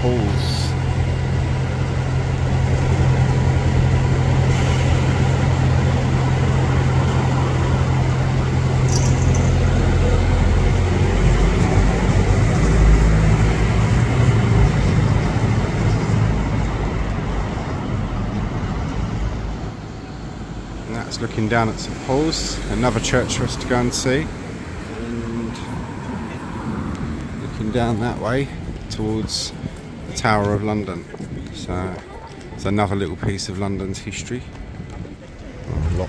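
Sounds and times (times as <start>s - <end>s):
bus engine humming: 0.0s - 36.0s
city street traffic: 0.0s - 36.0s.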